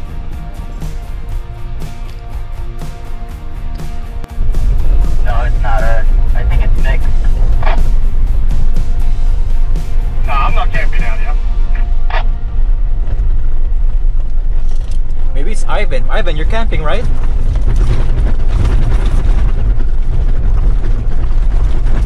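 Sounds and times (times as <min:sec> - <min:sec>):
music: 0:00.0 - 0:14.2
road and engine rumble: 0:00.0 - 0:22.0
indistinct voices: 0:05.0 - 0:08.0, 0:10.2 - 0:12.3.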